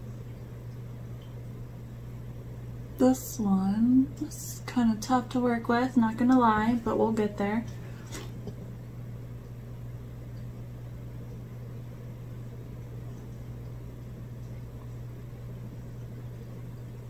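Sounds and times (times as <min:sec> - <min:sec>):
faint room noise hiss: 0:00.0 - 0:17.0
steady low hum: 0:00.0 - 0:17.0.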